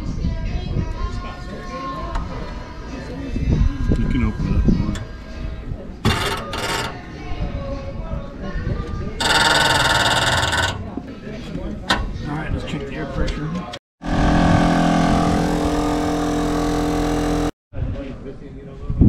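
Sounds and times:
impact wrench running: 0:09.2 - 0:10.8, 0:14.0 - 0:17.6.

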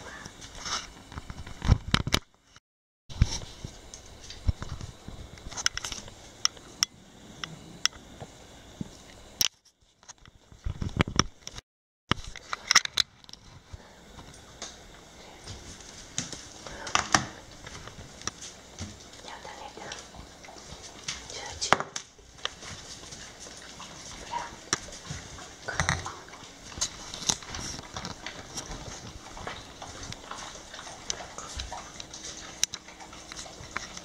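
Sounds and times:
dog eating from metal bowl: 0:15.4 - 0:21.6, 0:22.2 - 0:34.0
dog licking: 0:22.6 - 0:34.0.

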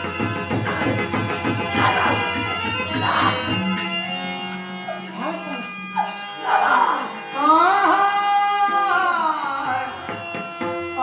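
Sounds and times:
harmonium drone: 0:00.0 - 0:11.0.

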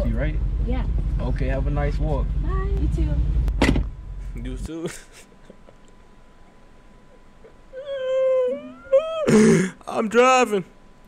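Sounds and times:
high-pitched vocal call: 0:07.8 - 0:09.7.

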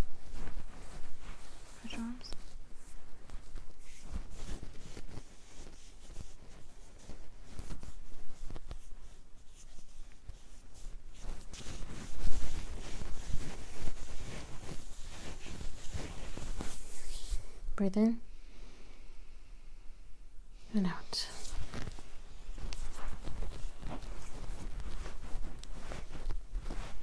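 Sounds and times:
fabric rustling: 0:00.0 - 0:17.7, 0:21.2 - 0:27.0.

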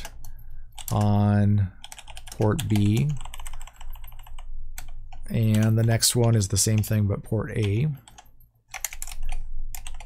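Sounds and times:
computer keyboard typing: 0:00.0 - 0:10.0.

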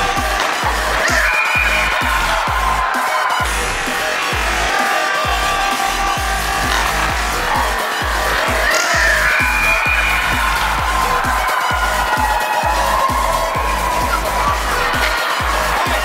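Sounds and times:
music with heavy bass beat: 0:00.0 - 0:16.0.

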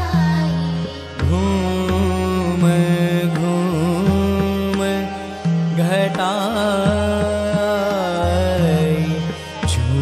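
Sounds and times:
devotional melodic line: 0:00.0 - 0:10.0.

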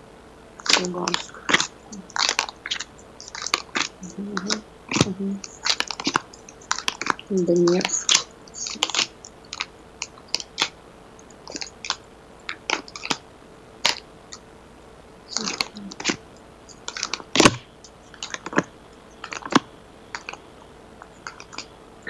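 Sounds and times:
faint steady hum: 0:00.0 - 0:22.0
cards clicking and rustling: 0:00.6 - 0:13.2, 0:15.3 - 0:20.4, 0:21.0 - 0:21.7.

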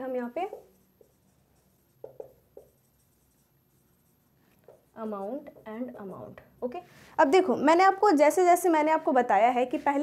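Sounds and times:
marker scratching on whiteboard: 0:00.4 - 0:05.9.

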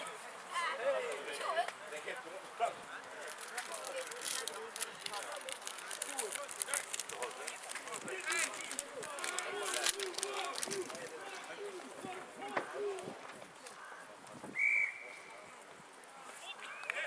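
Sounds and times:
players shouting and chattering: 0:00.0 - 0:17.0
spectators chattering: 0:00.0 - 0:17.0.

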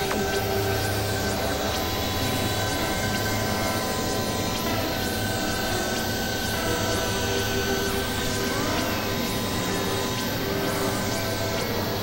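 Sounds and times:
sustained electronic tones: 0:00.0 - 0:12.0.

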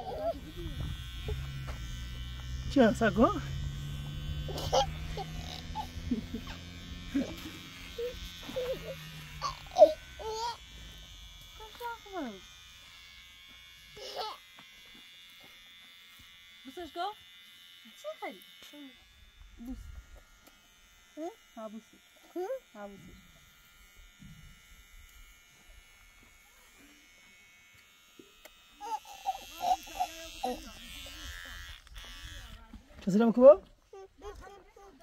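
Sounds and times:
electric hair clippers buzzing: 0:00.0 - 0:33.1
small child vocalising: 0:04.5 - 0:06.0, 0:07.9 - 0:10.6, 0:14.0 - 0:14.4, 0:28.8 - 0:31.3.

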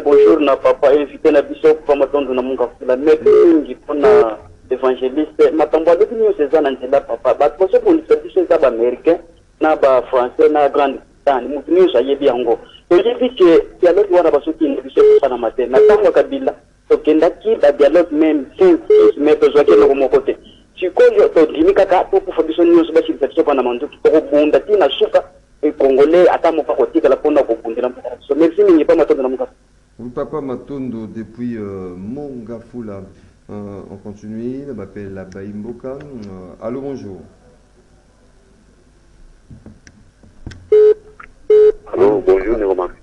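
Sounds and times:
person talking over telephone: 0:00.0 - 0:29.6, 0:41.8 - 0:43.0
telephone line beeps: 0:15.0 - 0:16.0, 0:18.9 - 0:19.2, 0:40.7 - 0:41.9.

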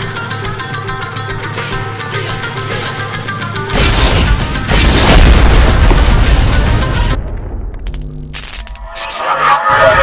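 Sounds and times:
music: 0:00.0 - 0:10.0
booming impact effects: 0:03.7 - 0:07.8.

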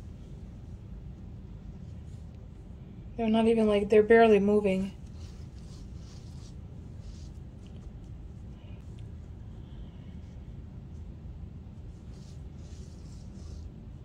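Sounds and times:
low room hum: 0:00.0 - 0:14.0
hand rustling dry material: 0:05.0 - 0:09.4, 0:11.7 - 0:14.0.

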